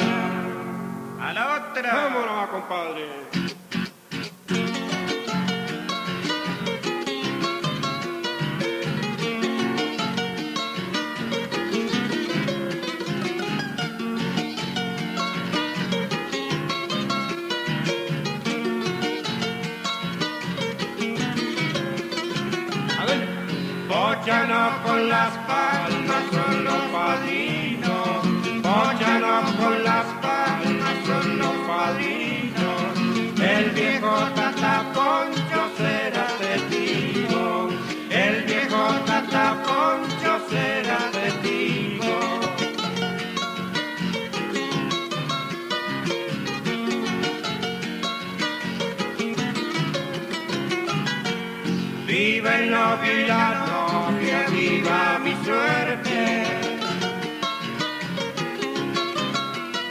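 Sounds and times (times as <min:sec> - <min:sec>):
acoustic guitars playing folk music: 0:00.0 - 0:59.9.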